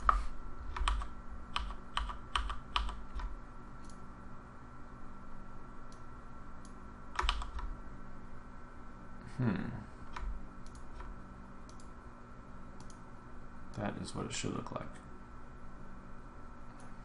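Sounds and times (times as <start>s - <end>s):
keyboard and mouse clicking: 0.0s - 4.0s, 6.6s - 7.7s, 10.1s - 11.1s, 12.8s - 13.0s
faint steady hum: 0.0s - 17.0s.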